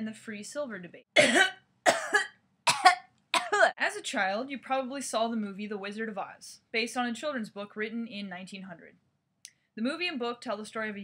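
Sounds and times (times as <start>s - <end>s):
person coughing: 1.2s - 3.7s.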